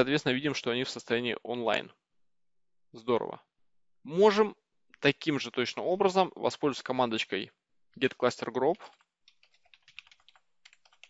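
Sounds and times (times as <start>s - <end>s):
faint keyboard typing: 8.7s - 11.0s.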